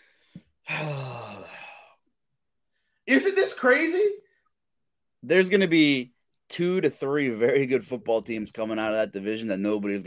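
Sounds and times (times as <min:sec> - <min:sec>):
man sighing: 0:00.0 - 0:02.2.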